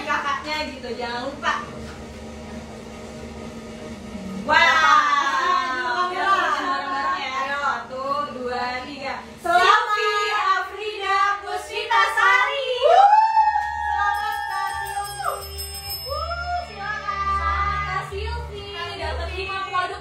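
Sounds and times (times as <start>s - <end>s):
low throbbing: 0.0s - 11.7s, 13.0s - 20.0s.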